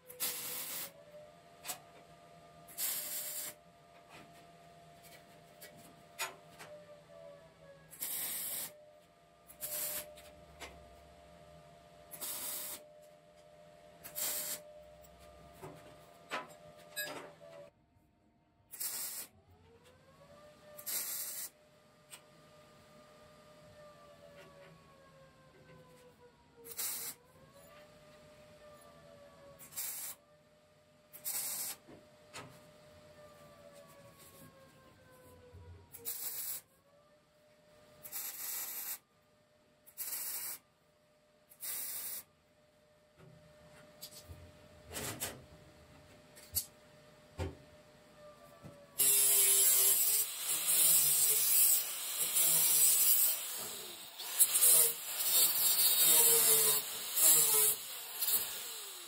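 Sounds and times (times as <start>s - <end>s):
sizzling welding arc bursts: 0.2s - 1.0s, 2.7s - 3.6s, 8.0s - 8.8s, 9.5s - 10.1s, 12.1s - 12.8s, 14.0s - 14.6s, 18.7s - 19.3s, 20.8s - 21.5s, 26.7s - 27.2s, 29.6s - 30.2s, 31.2s - 31.8s, 36.0s - 36.6s, 38.1s - 39.0s, 39.9s - 40.6s, 41.6s - 42.3s, 49.0s - 59.0s
faint whine: 0.4s - 17.7s.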